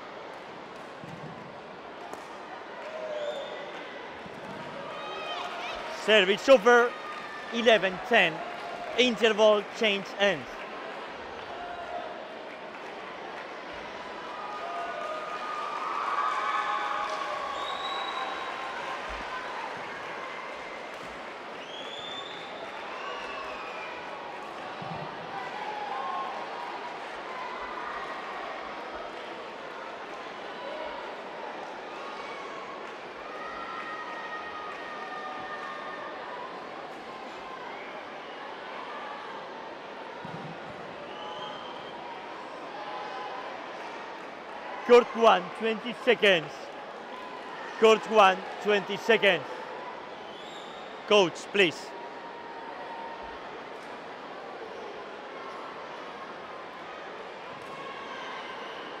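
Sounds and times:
crowd chatter in arena: 0:00.0 - 0:59.0.

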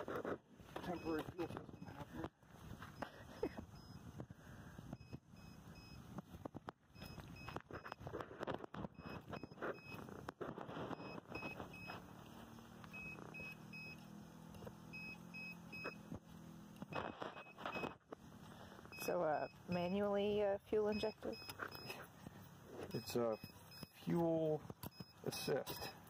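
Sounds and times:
low steady hum: 0:00.0 - 0:26.0
short high electronic beeps: 0:00.8 - 0:02.1
handling clicks and knocks: 0:24.6 - 0:25.2.

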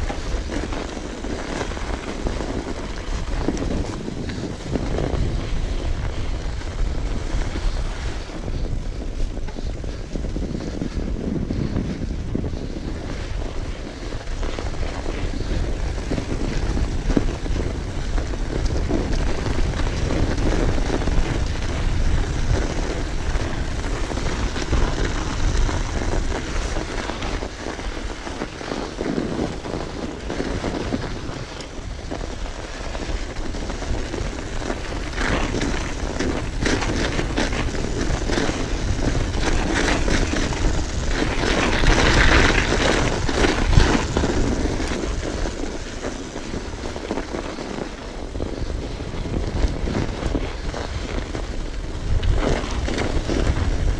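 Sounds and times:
bike tyres on snow: 0:00.0 - 0:53.9
wind rush on microphone: 0:00.0 - 0:53.9.

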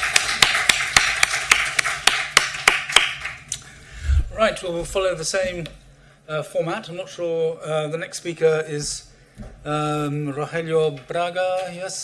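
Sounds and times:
small audience applauding: 0:00.0 - 0:03.5.

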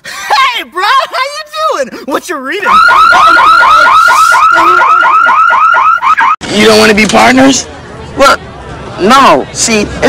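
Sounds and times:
car alarm chirping: 0:02.7 - 0:06.4.

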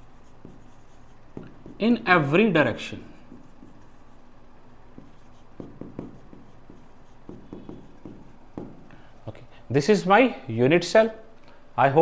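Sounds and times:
pen writing on a board: 0:00.2 - 0:02.0, 0:03.3 - 0:04.2, 0:04.9 - 0:08.9.

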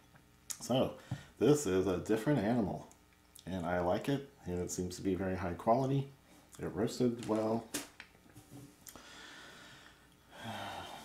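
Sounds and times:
man breathing: 0:08.8 - 0:11.0.

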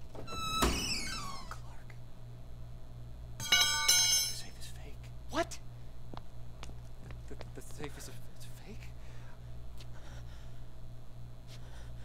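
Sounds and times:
crowbar clattering on concrete: 0:03.4 - 0:04.4.

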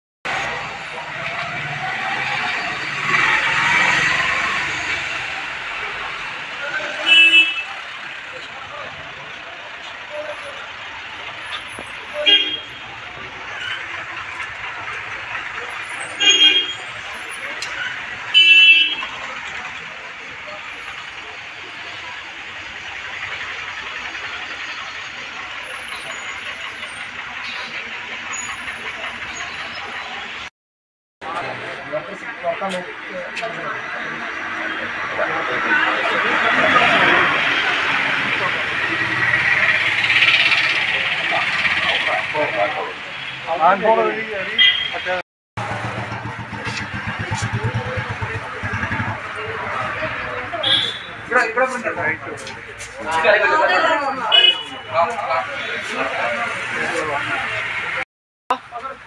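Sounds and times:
roadside traffic: 0:00.2 - 0:30.5, 0:31.2 - 0:59.0
vehicle engine: 0:00.3 - 0:30.5, 0:31.2 - 0:59.0
voices in background: 0:00.4 - 0:18.3, 0:31.2 - 0:59.0
car horns honking: 0:06.7 - 0:08.3, 0:11.5 - 0:13.9, 0:15.8 - 0:17.0, 0:17.7 - 0:19.3, 0:44.4 - 0:45.2, 0:50.3 - 0:51.4, 0:54.2 - 0:55.9.

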